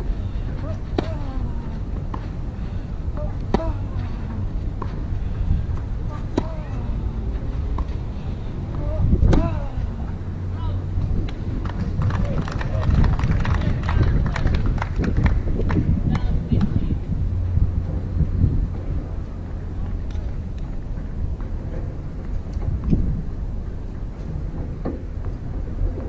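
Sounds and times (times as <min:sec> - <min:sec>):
tennis ball struck: 0:00.7 - 0:01.4, 0:03.1 - 0:03.9, 0:05.7 - 0:06.7, 0:07.6 - 0:08.1
small crowd applauding: 0:11.6 - 0:15.9.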